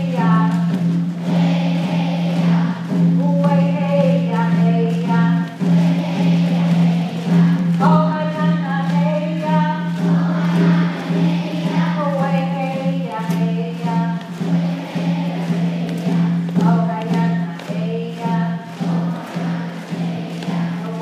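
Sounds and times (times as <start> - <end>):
woman singing a chant: 0.0 - 21.0.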